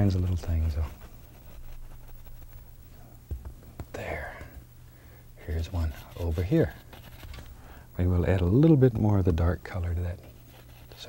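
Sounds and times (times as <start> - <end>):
paintbrush rubbing on canvas: 0.0 - 2.8, 5.5 - 7.4, 10.2 - 11.0
steady low hum: 0.0 - 11.0.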